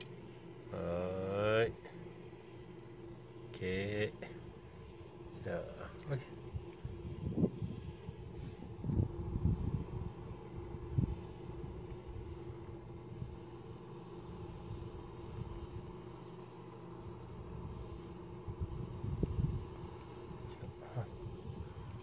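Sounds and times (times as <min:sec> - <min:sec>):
low mechanical hum: 0:00.0 - 0:22.0.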